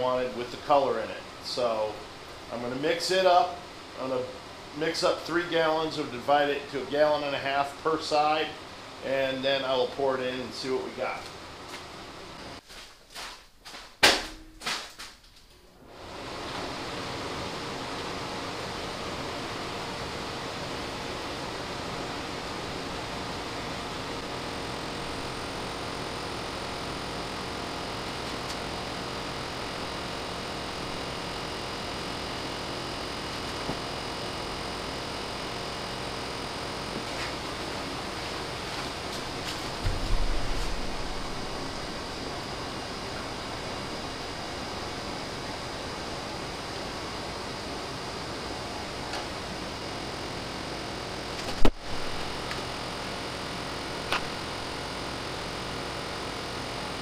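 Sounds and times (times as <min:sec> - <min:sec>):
steady rushing noise: 0:22.5 - 0:45.3
low thump: 0:39.8 - 0:41.8.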